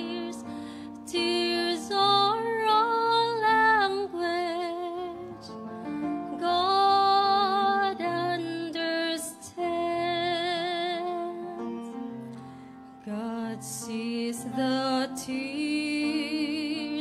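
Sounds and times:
woman singing gospel: 0.0s - 5.3s, 6.4s - 11.5s
soft instrumental accompaniment: 0.0s - 17.0s.

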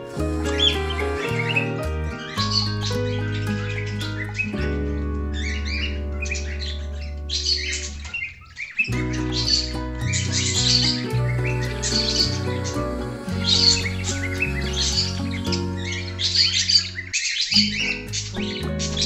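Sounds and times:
background music sustained notes: 0.0s - 19.0s
pet birds chirping: 0.0s - 19.0s.

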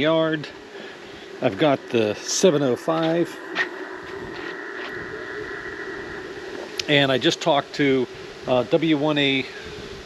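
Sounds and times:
radio receiver static hiss: 0.0s - 10.0s.

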